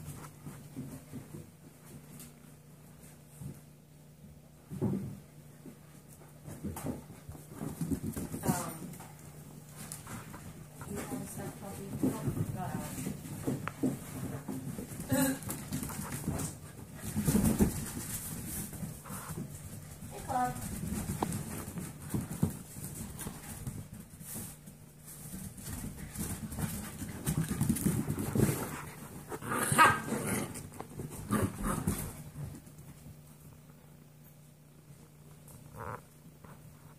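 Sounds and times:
paws thumping and scuffling: 0.0s - 36.9s.

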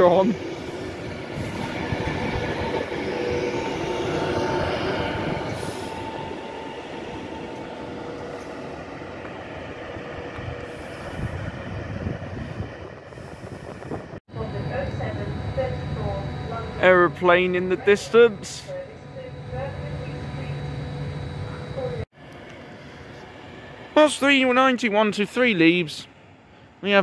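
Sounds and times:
train wheels rumbling on rails: 0.0s - 22.0s
train two-note whine: 0.0s - 24.8s.

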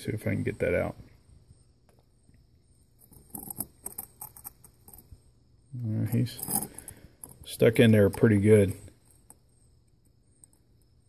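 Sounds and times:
screwdriver scraping and clicking on metal: 3.1s - 5.0s, 6.1s - 7.4s.

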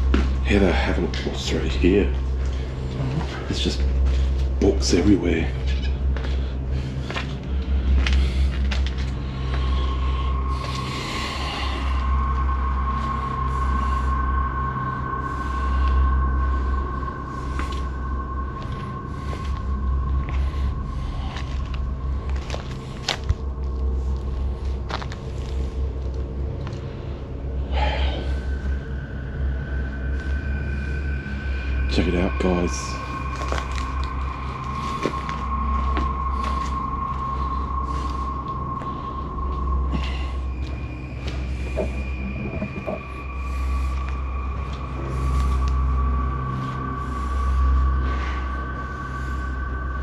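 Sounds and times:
steady low rumble: 0.0s - 50.0s
faint steady high tone: 9.2s - 25.7s, 27.0s - 50.0s
footsteps crunching over debris: 33.2s - 38.2s.

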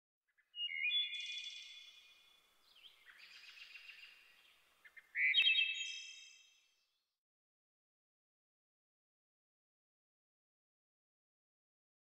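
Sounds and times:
songbird warbling: 0.6s - 2.1s, 2.7s - 6.4s.

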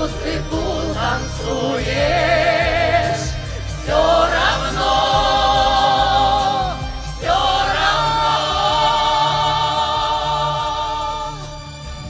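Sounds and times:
men's choir singing: 0.0s - 11.7s.

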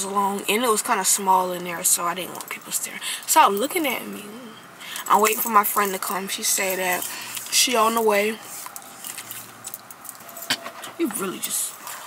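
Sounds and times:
beaded bracelets clinking: 5.0s - 10.6s.

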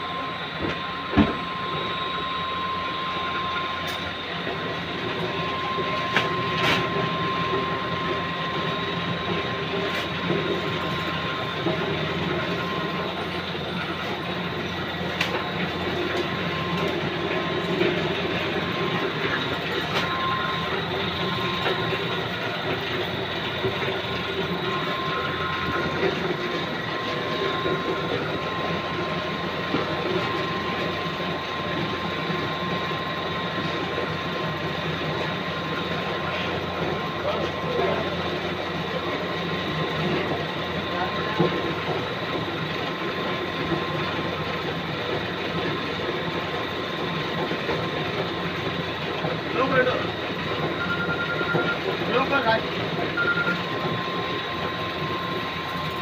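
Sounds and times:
machine clatter and whine: 0.0s - 56.0s.

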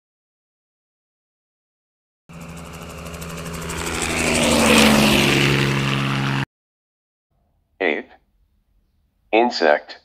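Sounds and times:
propeller aircraft engine drone: 2.3s - 6.5s.

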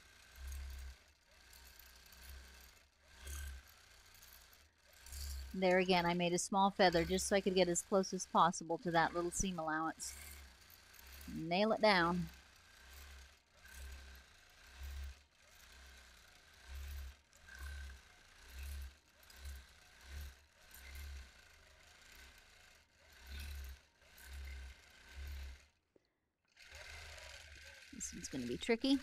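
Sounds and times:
quilting machine stitching: 0.0s - 25.8s, 26.6s - 29.0s.

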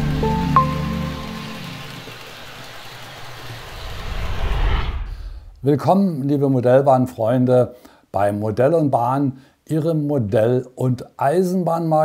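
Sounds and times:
intro jingle music: 0.0s - 3.0s
passing train rushing: 0.0s - 5.5s.

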